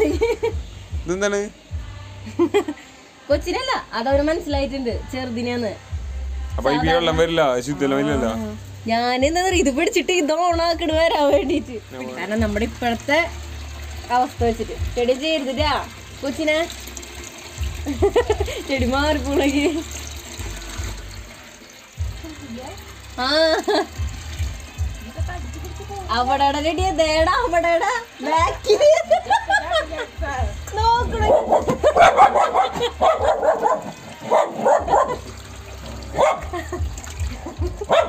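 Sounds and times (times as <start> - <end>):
hose water splashing into metal pot: 6.5 - 38.0
dog barking and yipping: 31.2 - 35.3, 35.9 - 36.6, 37.8 - 38.0.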